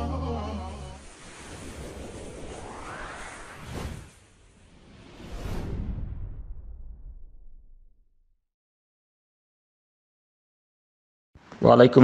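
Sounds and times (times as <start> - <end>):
whoosh rising in pitch: 0.0 - 7.1.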